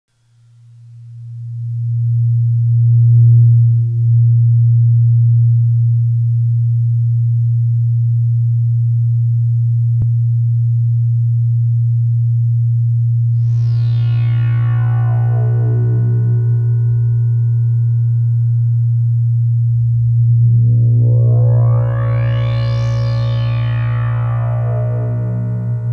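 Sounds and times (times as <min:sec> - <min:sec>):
deep synthesizer drone: 0:12.7 - 0:25.9
bright falling tone sweep: 0:13.4 - 0:18.5, 0:19.8 - 0:25.9.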